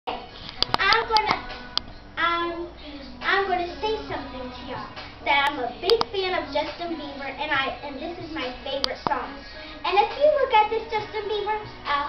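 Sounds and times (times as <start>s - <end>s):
young girl's voice: 0.8s - 1.6s, 2.2s - 12.0s.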